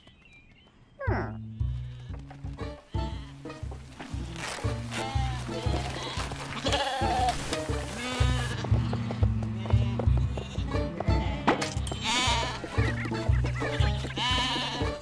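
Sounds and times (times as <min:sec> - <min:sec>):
cartoon sheep bleating: 0:04.9 - 0:08.6, 0:09.7 - 0:15.0.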